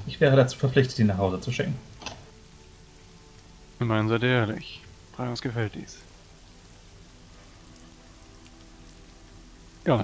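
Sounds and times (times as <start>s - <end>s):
low sustained music tones: 0.0s - 10.0s
steady hiss: 0.0s - 10.0s.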